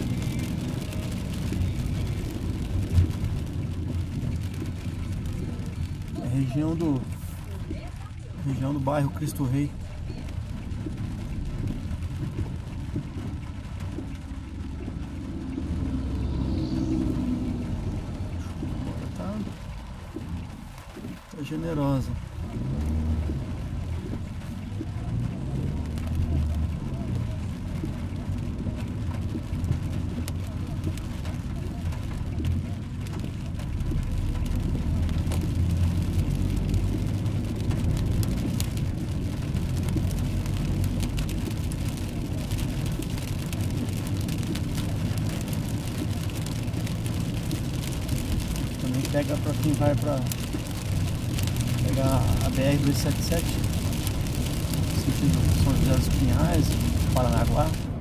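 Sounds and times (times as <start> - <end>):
car engine running: 0.0 - 58.0
tyres hissing on wet road: 0.0 - 58.0.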